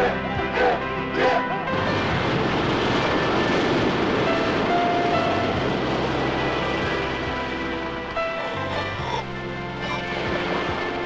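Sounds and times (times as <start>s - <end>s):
faint music tones: 0.0s - 11.0s
ocean surf breaking: 0.0s - 11.0s.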